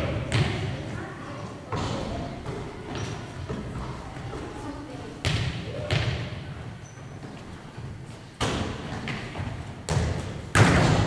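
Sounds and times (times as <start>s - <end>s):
basketball bouncing on wooden floor: 0.3s - 0.6s, 8.4s - 11.0s.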